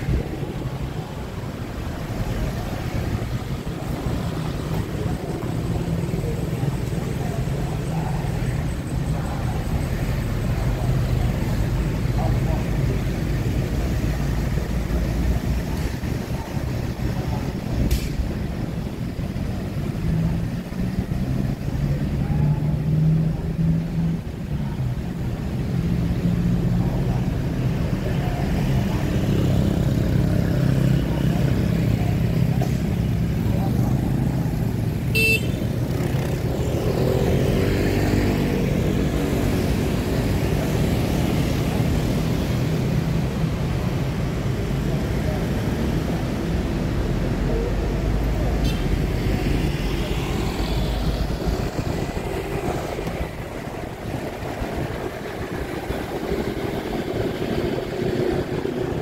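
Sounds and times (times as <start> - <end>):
traffic passing: 0.0 - 59.0
vehicle road rumble: 0.0 - 59.0.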